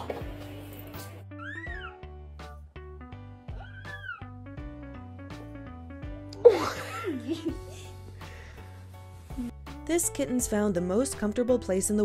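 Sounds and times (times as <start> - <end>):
background music: 0.0 - 12.0
cat meowing: 3.5 - 4.3.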